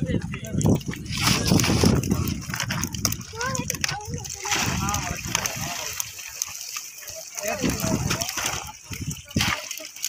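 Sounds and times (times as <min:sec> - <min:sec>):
water splashing and pouring: 0:00.0 - 0:10.0.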